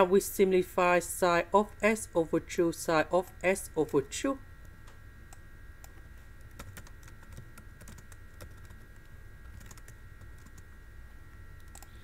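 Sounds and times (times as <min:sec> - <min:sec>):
computer keyboard typing: 0:05.8 - 0:10.6, 0:11.6 - 0:11.9.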